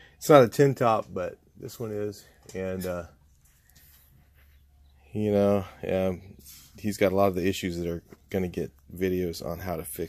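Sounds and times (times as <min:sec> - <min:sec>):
faint hiss: 0:05.4 - 0:07.2.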